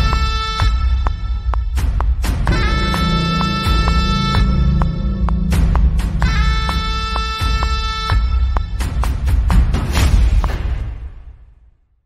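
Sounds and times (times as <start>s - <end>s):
booming electronic drums: 0.0s - 11.3s
brassy horn-like synth note: 2.5s - 8.5s.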